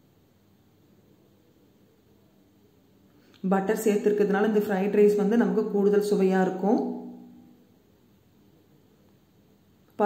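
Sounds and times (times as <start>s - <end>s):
faint steady hiss: 0.0s - 10.0s
woman's voice: 3.4s - 7.2s.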